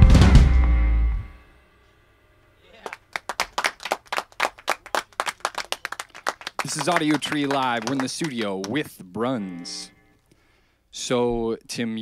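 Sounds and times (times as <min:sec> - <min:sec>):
people clapping: 0:02.8 - 0:09.0.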